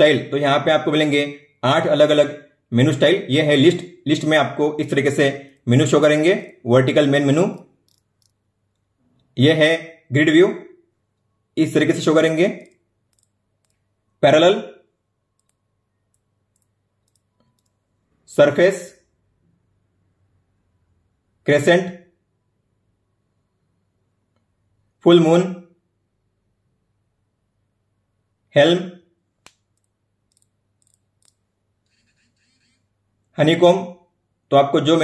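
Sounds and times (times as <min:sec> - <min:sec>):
fingertip tapping touchscreen: 0:12.5 - 0:13.9, 0:15.3 - 0:17.9, 0:29.4 - 0:32.9.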